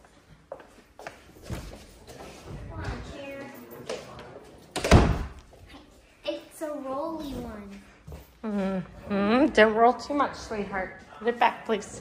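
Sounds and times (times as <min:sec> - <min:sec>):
door shutting with thud: 0:04.8 - 0:05.4.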